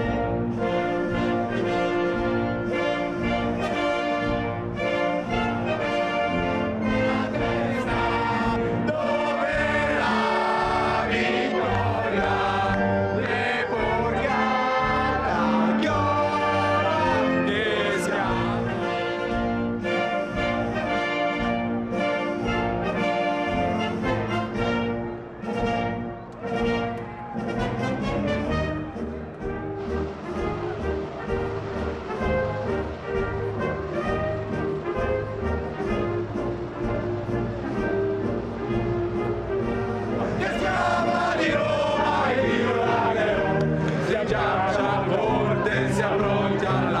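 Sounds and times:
orchestra playing anthem: 0.0 - 47.0
crowd of men singing: 6.8 - 19.4, 40.2 - 47.0.

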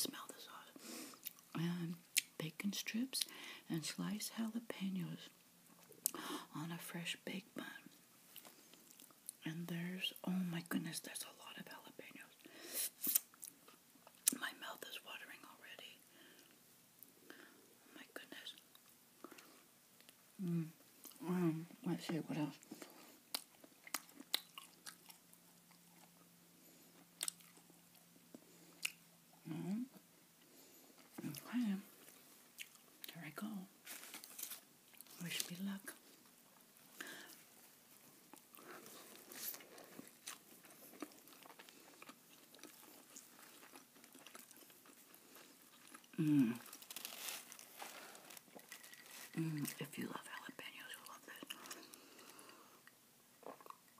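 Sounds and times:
hands rustling food wrapper: 33.8 - 35.5, 38.3 - 49.8
biting and chewing burger: 38.3 - 49.7.

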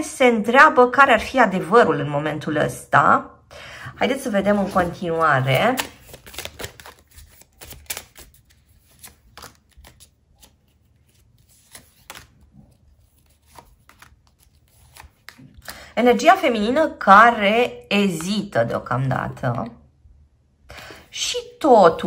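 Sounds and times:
cards dealt onto a table: 5.7 - 12.4.

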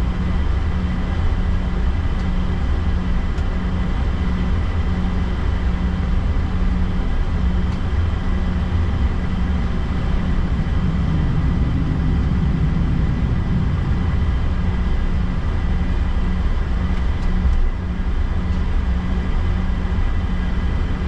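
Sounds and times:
jet engine drone and rumble: 0.0 - 21.0.

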